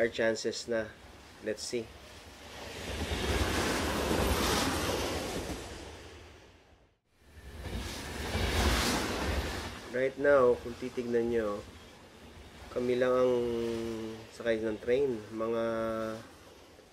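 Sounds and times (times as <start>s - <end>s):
train rumbling inside carriage: 2.8s - 6.0s, 7.6s - 9.8s.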